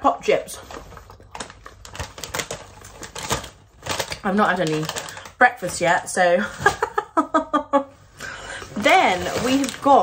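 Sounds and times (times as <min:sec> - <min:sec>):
plastic crisp packet crackling: 0:00.7 - 0:06.2, 0:08.8 - 0:10.0.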